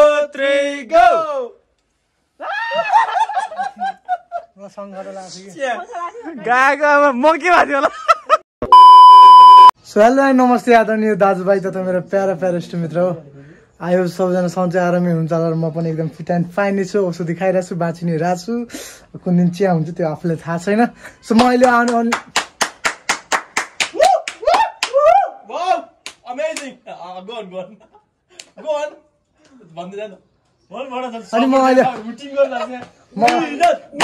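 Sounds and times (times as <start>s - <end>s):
high electronic beep: 8.6s - 9.8s
hands clapping in rhythm: 21.3s - 25.1s, 26.0s - 26.8s, 28.4s - 28.6s, 32.8s - 34.0s.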